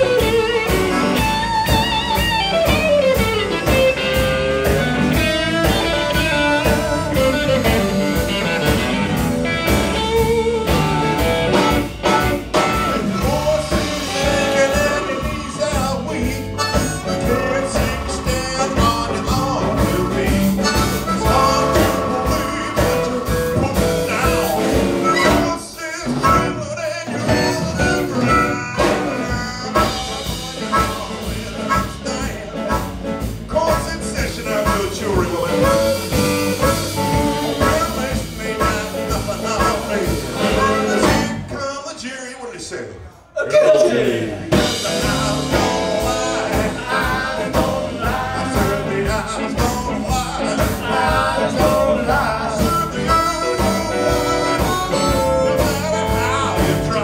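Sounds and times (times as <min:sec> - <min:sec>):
electric guitar: 0:00.0 - 0:41.5, 0:43.7 - 0:57.0
drum kit: 0:00.0 - 0:41.6, 0:43.6 - 0:57.0
bass guitar: 0:00.0 - 0:41.8, 0:43.6 - 0:57.0.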